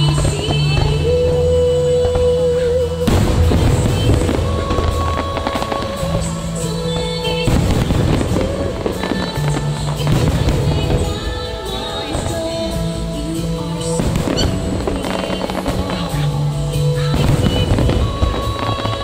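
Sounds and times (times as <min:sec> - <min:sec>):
fireworks bursting and crackling: 0:00.0 - 0:19.0
loud show music: 0:00.0 - 0:19.0.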